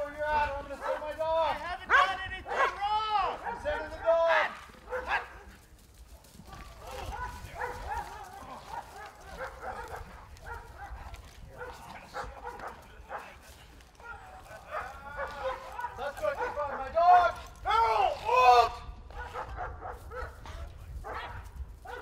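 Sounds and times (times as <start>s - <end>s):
dog barking: 0.8s - 1.2s, 1.9s - 4.1s, 4.8s - 5.6s, 6.5s - 13.4s, 14.0s - 17.0s, 19.1s - 22.0s.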